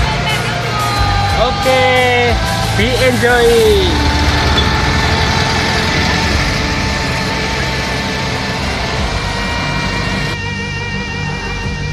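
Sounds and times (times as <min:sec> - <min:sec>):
car engine driving away: 0:01.8 - 0:10.4.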